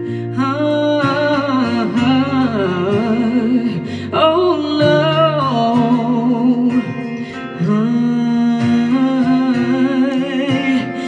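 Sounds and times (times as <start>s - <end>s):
woman singing with vibrato: 0.0s - 11.0s.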